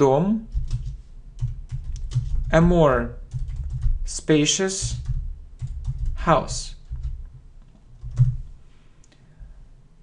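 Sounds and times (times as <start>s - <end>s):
person speaking: 0.0s - 0.5s, 2.4s - 3.3s, 4.0s - 5.1s, 6.1s - 6.9s
typing on computer keyboard: 0.5s - 4.1s, 4.8s - 7.4s, 8.0s - 8.4s.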